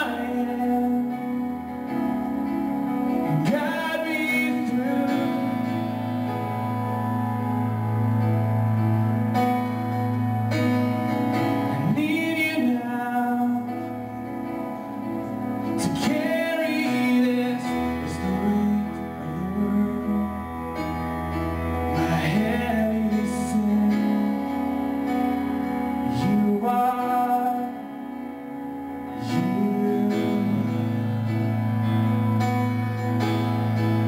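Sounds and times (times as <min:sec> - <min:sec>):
man singing: 0:00.0 - 0:02.1, 0:03.2 - 0:06.7, 0:11.6 - 0:14.2, 0:15.7 - 0:25.4, 0:26.0 - 0:28.2, 0:29.1 - 0:31.6
synthesizer keyboard chords: 0:00.0 - 0:34.0.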